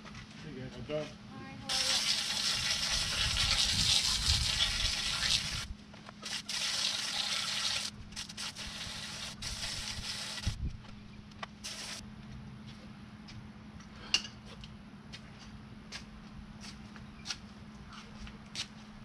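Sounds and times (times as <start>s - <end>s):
water spraying from hose nozzle: 1.7s - 10.6s, 11.6s - 12.0s.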